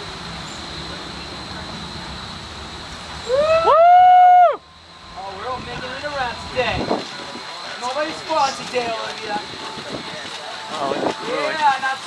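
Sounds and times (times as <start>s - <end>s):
person cheering whoop: 3.3s - 4.6s.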